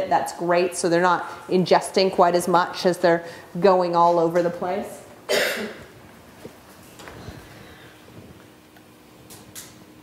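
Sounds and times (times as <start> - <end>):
person coughing: 5.3 - 5.9.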